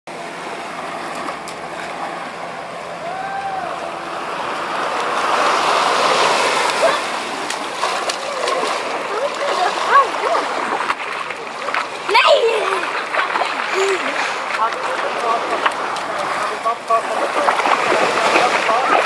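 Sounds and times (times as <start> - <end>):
small waves breaking on beach: 0.1 - 19.0
voices calling out: 2.3 - 19.0.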